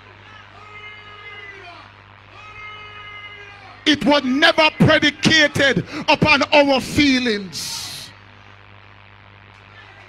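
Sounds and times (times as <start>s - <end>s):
man's voice: 3.9s - 8.2s.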